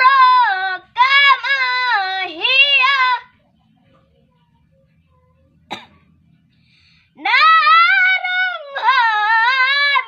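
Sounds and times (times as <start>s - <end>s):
person coughing: 5.7s - 6.1s.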